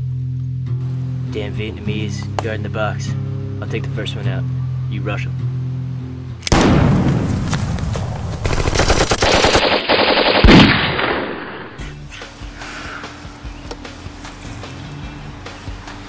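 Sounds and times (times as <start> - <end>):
automatic gunfire bursts: 8.4 - 11.8.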